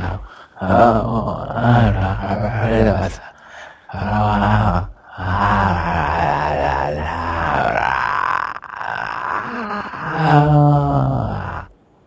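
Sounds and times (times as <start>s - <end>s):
man groaning: 0.0s - 3.3s, 3.9s - 11.7s.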